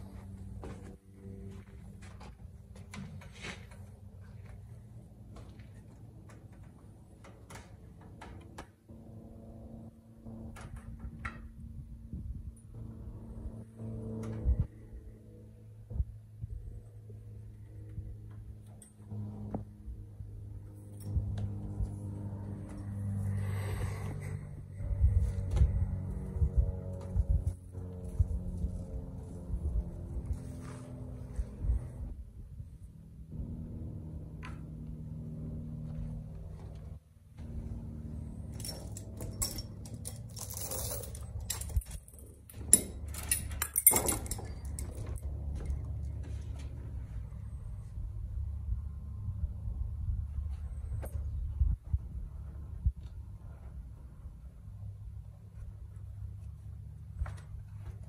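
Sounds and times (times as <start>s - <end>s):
steady low hum: 0.0s - 58.0s
chains clinking and rattling: 38.4s - 45.4s.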